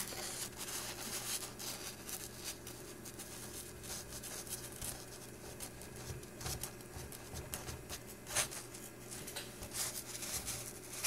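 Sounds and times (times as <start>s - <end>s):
paper sheet rustling: 0.0s - 11.0s.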